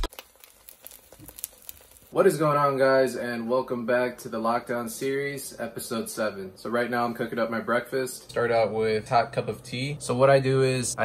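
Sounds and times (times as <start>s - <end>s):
food crackling in a frying pan: 0.0s - 2.8s.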